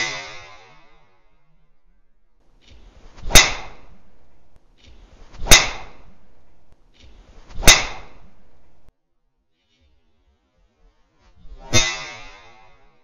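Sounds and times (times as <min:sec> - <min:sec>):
golf club swish: 0:02.7 - 0:04.1, 0:04.9 - 0:08.9.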